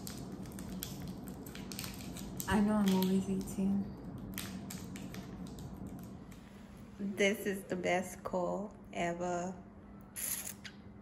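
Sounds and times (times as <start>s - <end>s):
snack clicks and crackles: 0.0s - 6.4s
low steady hum: 0.0s - 11.0s.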